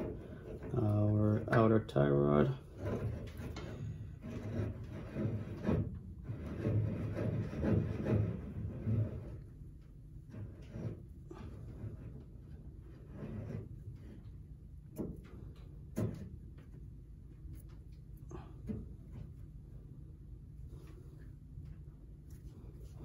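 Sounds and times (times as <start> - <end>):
rubbing and handling sounds: 0.0 - 23.0.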